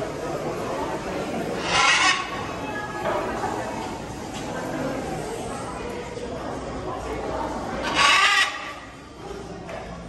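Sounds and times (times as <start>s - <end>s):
macaw squawking: 1.6s - 2.4s, 7.8s - 8.8s.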